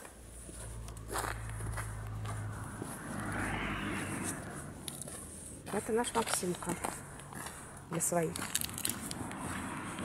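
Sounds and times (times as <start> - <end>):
footsteps crunching on snow: 0.0 - 10.0
steady low rumble: 0.1 - 10.0.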